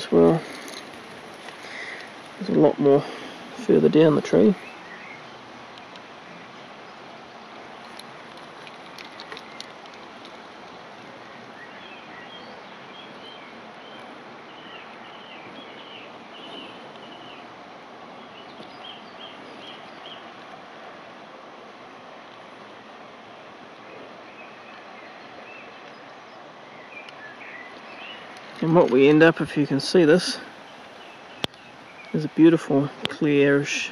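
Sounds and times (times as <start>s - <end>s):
small birds chirping: 0.0s - 21.2s, 22.1s - 33.9s
river rushing: 0.0s - 33.9s
light clicks: 7.8s - 10.8s.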